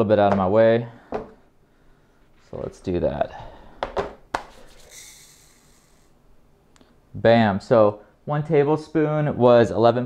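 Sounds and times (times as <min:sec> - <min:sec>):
plastic trays knocking: 0:03.8 - 0:04.5.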